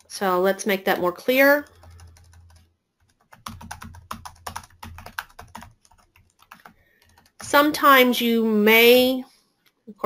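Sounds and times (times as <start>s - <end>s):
typing on computer keyboard: 1.6s - 7.8s.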